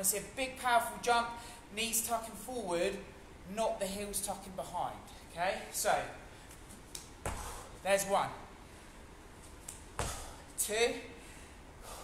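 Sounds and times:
man speaking: 0:00.0 - 0:06.2, 0:07.8 - 0:08.5, 0:10.6 - 0:11.2
feet landing on gym floor: 0:07.0 - 0:07.6, 0:09.6 - 0:10.4.

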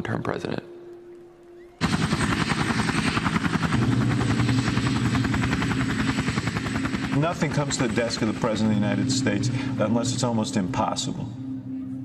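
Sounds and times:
turbine whine: 0:00.7 - 0:11.8
helicopter rotor chop: 0:01.8 - 0:11.0.

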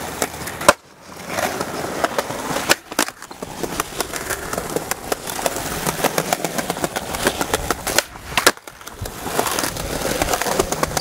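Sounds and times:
skateboard wheels rolling on stone: 0:00.0 - 0:11.0
skateboard tail snap: 0:00.1 - 0:11.0.

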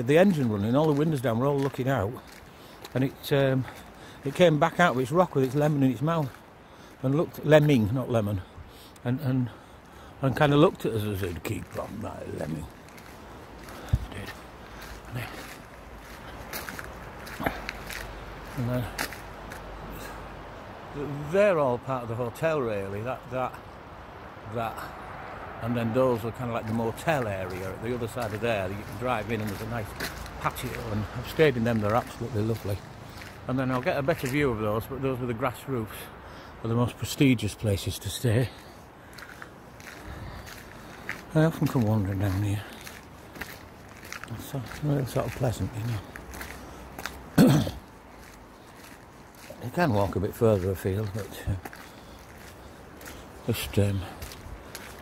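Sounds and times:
man clearing his throat: 0:47.3 - 0:47.9.

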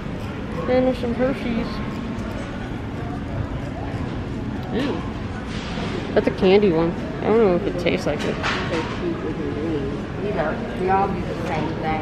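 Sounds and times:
faint indistinct voices: 0:00.0 - 0:12.0
shop floor background noise: 0:00.0 - 0:12.0.

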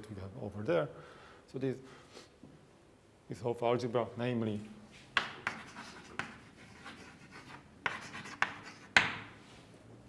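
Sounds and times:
chalk scratching on blackboard: 0:05.2 - 0:09.3
chalk tapping on blackboard: 0:05.2 - 0:09.4.

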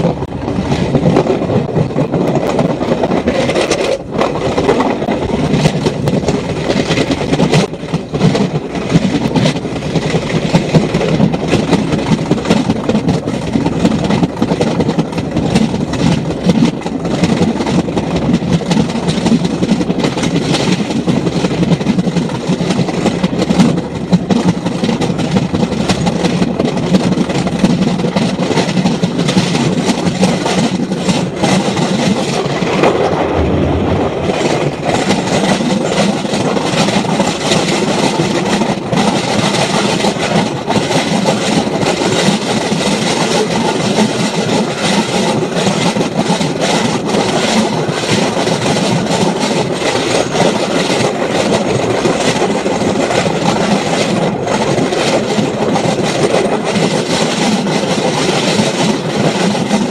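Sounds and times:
track knocks: 0:00.0 - 0:59.9
train wheels rumbling on rails: 0:00.0 - 0:59.9
wind on microphone: 0:00.0 - 0:59.9.

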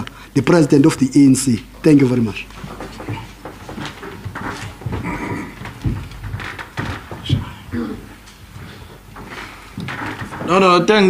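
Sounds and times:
shuffling movement noises: 0:01.8 - 0:11.0
scattered knocks: 0:02.6 - 0:11.0
heavy thump: 0:02.7 - 0:08.0.

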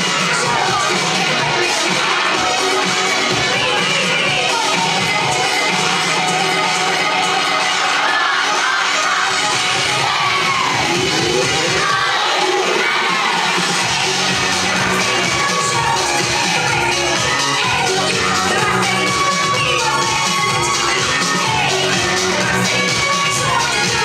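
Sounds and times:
children shouting and cheering: 0:00.0 - 0:24.0
loud dance music: 0:00.0 - 0:24.0.

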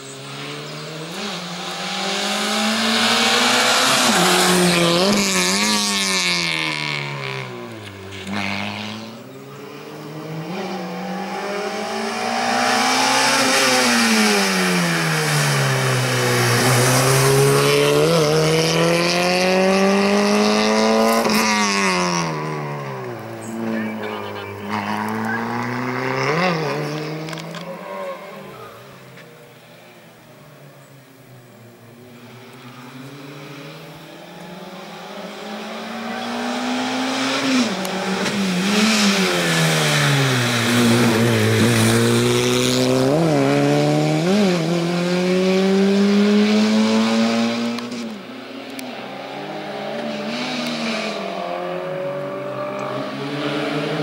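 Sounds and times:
car engine revving: 0:00.0 - 0:30.0, 0:31.2 - 0:54.0.

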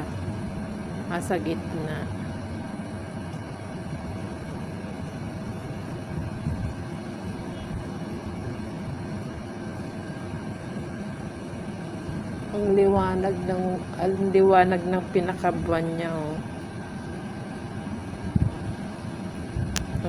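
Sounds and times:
faint hum: 0:00.0 - 0:20.0
steady background noise: 0:00.0 - 0:20.0.

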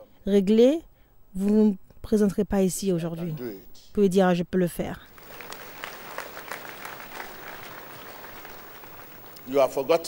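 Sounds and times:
congregation applauding: 0:05.1 - 0:10.0.

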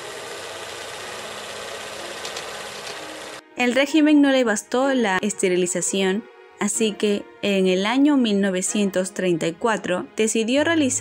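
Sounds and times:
film projector whirring and clatter: 0:00.0 - 0:03.4.

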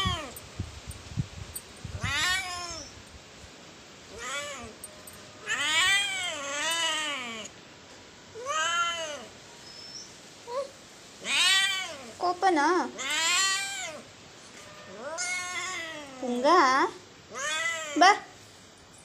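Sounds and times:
cat meowing: 0:00.0 - 0:00.4, 0:02.0 - 0:03.0, 0:04.1 - 0:04.8, 0:05.4 - 0:07.5, 0:08.4 - 0:09.3, 0:11.2 - 0:12.2, 0:13.0 - 0:14.0, 0:14.9 - 0:16.2, 0:17.3 - 0:18.1
cat chirp: 0:02.0 - 0:03.0, 0:13.0 - 0:14.0, 0:14.9 - 0:16.2.

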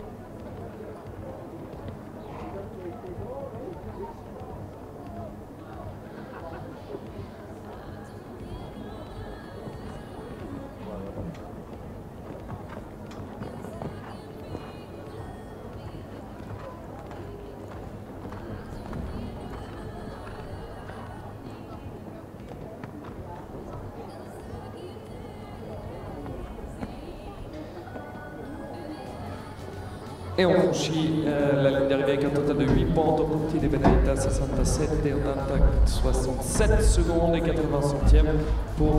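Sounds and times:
background music: 0:00.0 - 0:38.9.

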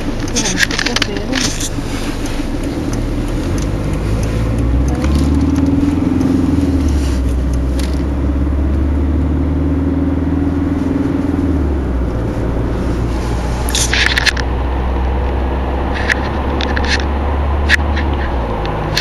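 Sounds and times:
car engine hum: 0:00.0 - 0:19.0
road noise: 0:00.0 - 0:19.0.

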